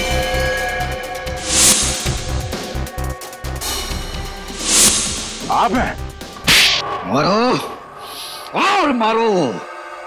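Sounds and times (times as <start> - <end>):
sharp whip-like swish: 4.6 - 5.4.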